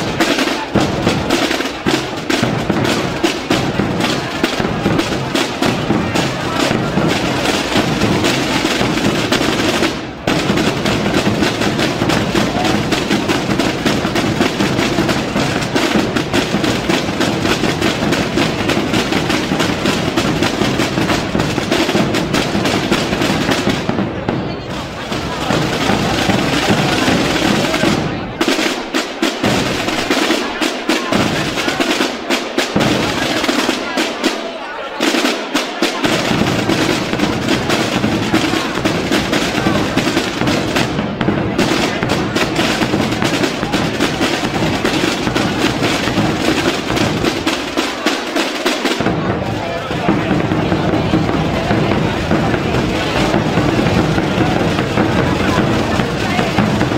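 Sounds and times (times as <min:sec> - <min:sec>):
snare drums rolling: 0:00.0 - 0:56.9.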